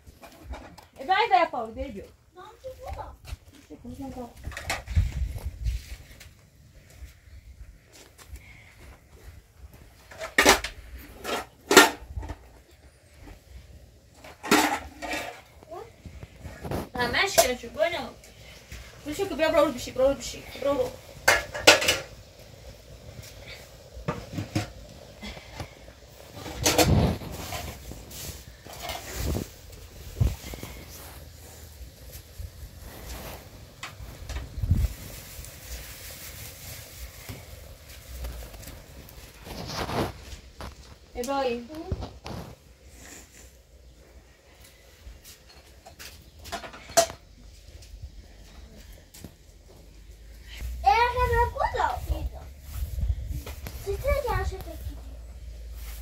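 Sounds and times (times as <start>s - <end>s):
dishes and pots clinking: 14.2s - 15.5s, 21.2s - 22.2s.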